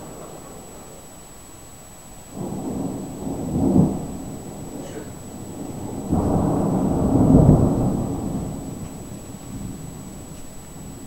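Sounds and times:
thunder rumbling: 0:00.0 - 0:11.0.

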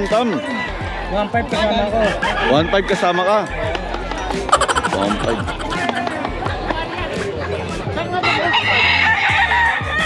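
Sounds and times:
rooster crowing: 0:08.2 - 0:10.0.

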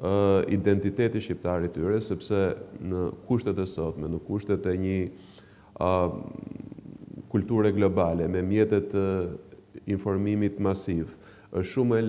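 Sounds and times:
man speaking: 0:00.0 - 0:05.2, 0:05.8 - 0:12.0.

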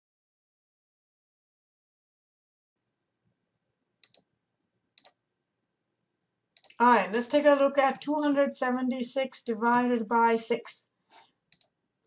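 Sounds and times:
computer mouse clicks: 0:04.0 - 0:04.3, 0:05.0 - 0:05.2, 0:06.6 - 0:06.8, 0:11.5 - 0:11.8.

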